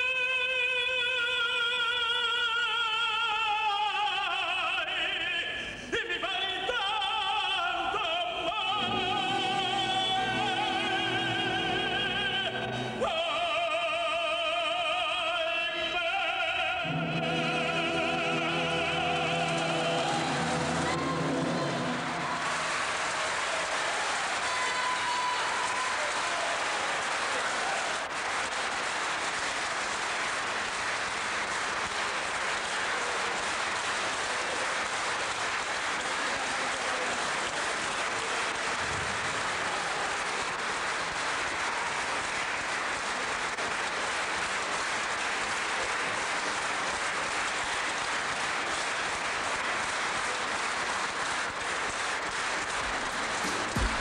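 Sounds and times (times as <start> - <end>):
audience applauding: 6.2 - 54.0.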